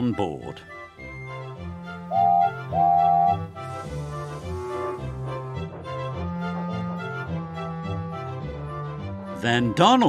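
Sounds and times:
background music: 0:00.0 - 0:10.0
steam locomotive whistle: 0:02.1 - 0:03.8.

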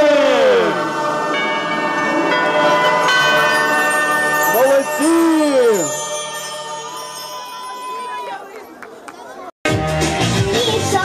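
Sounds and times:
bell-like chimes ringing: 0:01.1 - 0:08.8.

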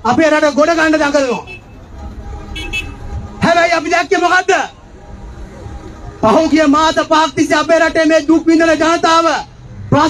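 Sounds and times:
man speaking into a microphone: 0:00.0 - 0:01.6, 0:03.4 - 0:04.8, 0:06.2 - 0:10.0
low traffic rumble: 0:00.0 - 0:10.0.

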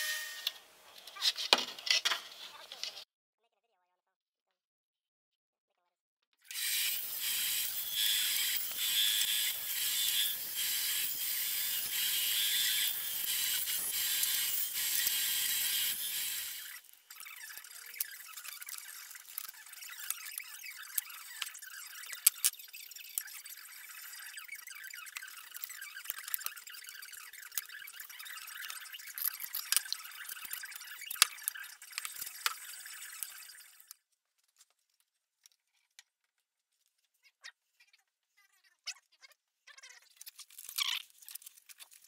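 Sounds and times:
power saw cutting plastic: 0:06.5 - 0:34.0
plastic pieces clicking: 0:16.6 - 0:23.4, 0:25.0 - 0:36.4, 0:40.1 - 0:42.0.

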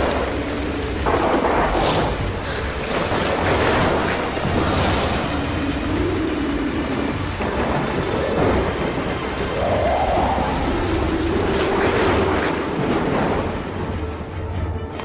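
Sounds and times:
heavy rain pouring: 0:00.0 - 0:15.0
thunder rumbling: 0:00.0 - 0:15.0.

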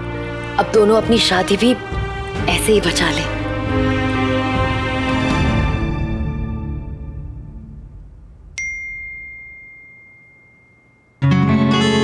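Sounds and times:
smartphone notification ding: 0:08.6 - 0:11.3.

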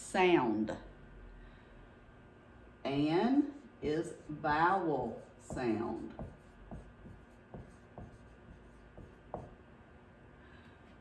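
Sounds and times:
marker writing on whiteboard: 0:03.6 - 0:09.6.

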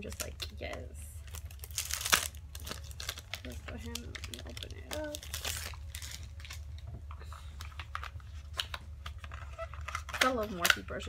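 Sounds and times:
plastic packaging clicks and crackles: 0:00.0 - 0:11.0.

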